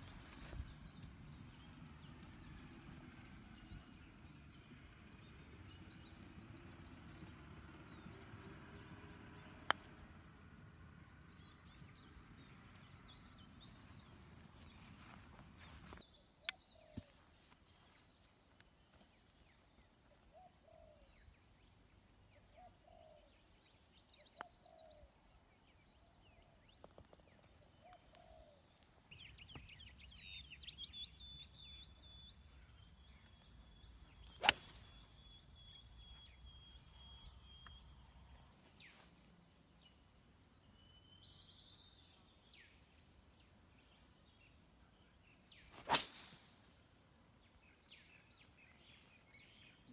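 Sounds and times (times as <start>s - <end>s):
birds chirping: 10.8s - 39.2s, 39.8s - 46.6s
golf club striking ball: 34.4s - 34.7s, 45.8s - 46.4s.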